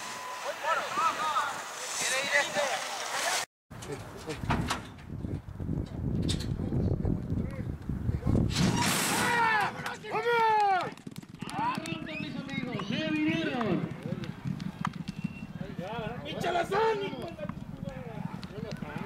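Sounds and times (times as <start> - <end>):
horses galloping: 9.6 - 19.0.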